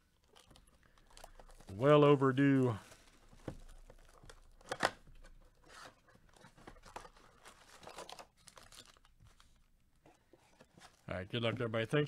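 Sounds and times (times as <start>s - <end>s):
foil wrappers crinkling: 7.0s - 9.6s.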